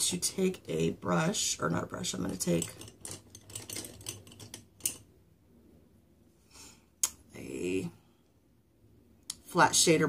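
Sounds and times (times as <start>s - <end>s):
makeup brushes clattering: 1.7s - 5.1s.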